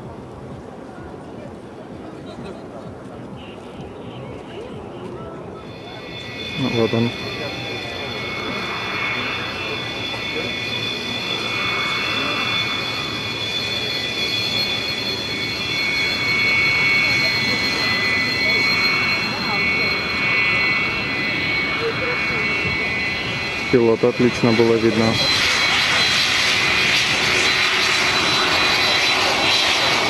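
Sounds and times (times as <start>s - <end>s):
jet engines whining: 1.8s - 30.0s
rushing noise: 5.5s - 30.0s.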